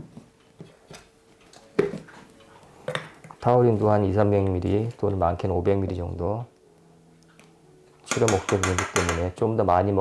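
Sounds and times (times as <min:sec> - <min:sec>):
sharp knocks on plastic bottle: 0:08.1 - 0:09.3.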